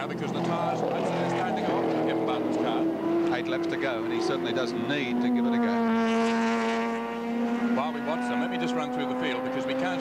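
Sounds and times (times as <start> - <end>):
racing car engines: 0.0 - 10.0.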